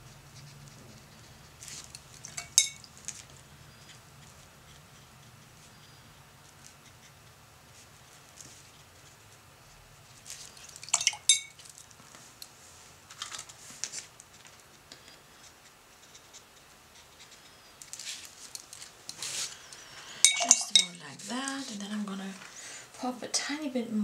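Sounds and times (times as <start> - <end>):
paintbrush clinking against palette: 2.2 - 2.9, 10.8 - 11.6, 20.2 - 21.0.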